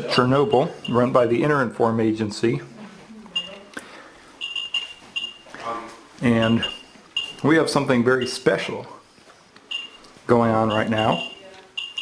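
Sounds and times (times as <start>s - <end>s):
geiger counter chirps: 4.4s - 5.5s, 6.4s - 7.4s, 9.7s - 12.0s
geiger counter clicks: 9.6s - 12.0s.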